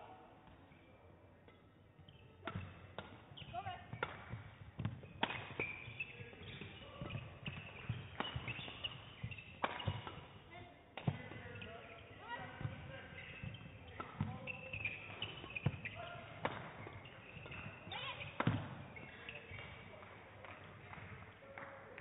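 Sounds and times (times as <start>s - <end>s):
shoes squeaking on court floor: 0.4s - 20.6s
rackets hitting shuttlecock: 1.4s - 19.9s.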